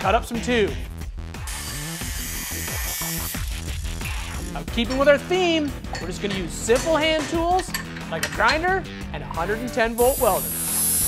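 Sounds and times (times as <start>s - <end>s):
background music: 0.0s - 11.0s
angle grinder cutting steel: 1.4s - 5.2s, 10.0s - 11.0s.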